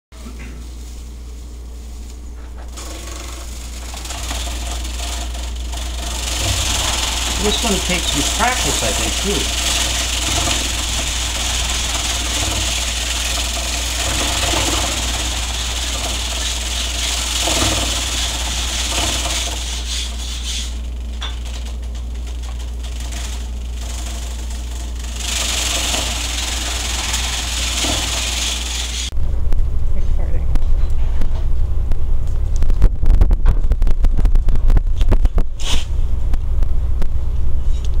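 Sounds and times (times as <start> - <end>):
grain stalks hissing and rattling: 0.2 - 29.2, 35.6 - 35.9
motor humming: 0.2 - 29.9
low rumble with knocks: 21.0 - 35.6.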